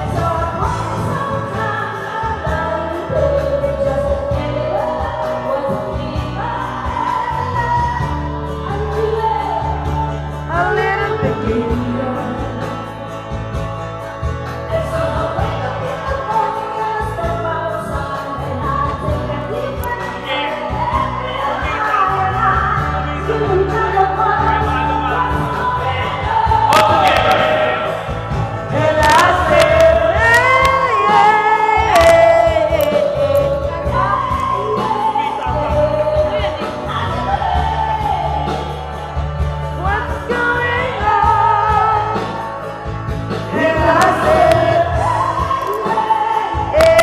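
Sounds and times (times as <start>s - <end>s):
person singing into a microphone: 0.0s - 13.2s, 14.7s - 47.0s
amplified backing music with bass: 0.0s - 47.0s.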